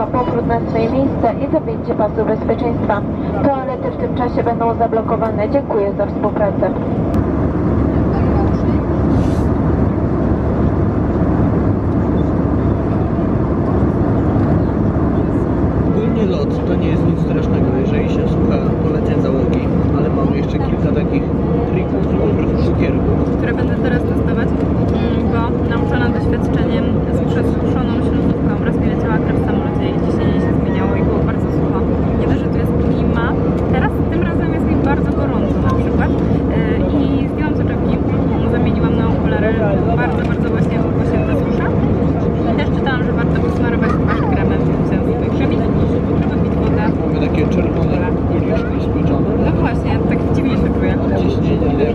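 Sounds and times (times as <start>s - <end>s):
voices talking: 0.0s - 7.0s, 12.1s - 51.9s
airliner cabin roar in flight: 0.0s - 51.9s.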